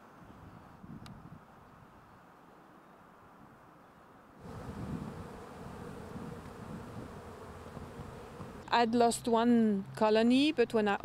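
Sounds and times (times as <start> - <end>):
bees buzzing: 4.4 - 8.8.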